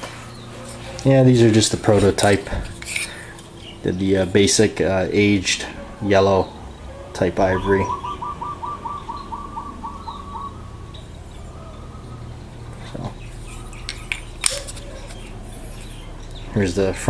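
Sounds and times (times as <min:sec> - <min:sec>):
bird chirping: 0:00.2 - 0:17.0.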